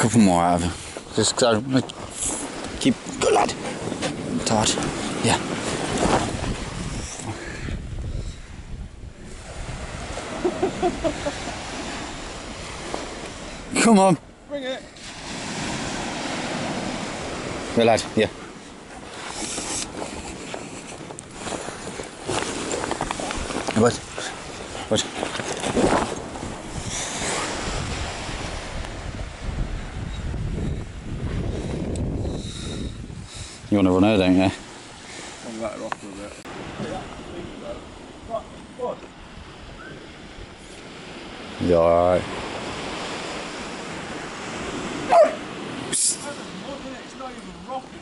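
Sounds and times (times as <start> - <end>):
surf breaking on beach: 0.0 - 8.1, 9.2 - 33.0, 34.1 - 48.0
wind buffeting microphone: 0.0 - 14.5, 15.2 - 48.0.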